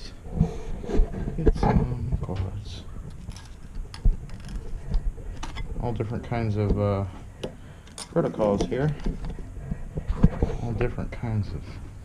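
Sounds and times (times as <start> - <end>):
knocks and thumps of objects: 0.3 - 6.0, 6.6 - 10.7.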